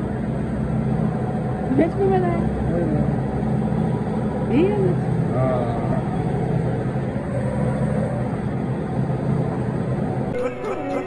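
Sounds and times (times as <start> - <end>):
motor running steadily: 0.0 - 11.0.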